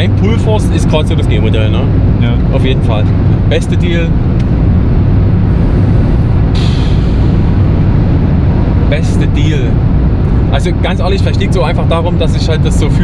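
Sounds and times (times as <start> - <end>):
car road and engine drone: 0.0 - 13.0
brief rushing hiss: 6.6 - 7.5.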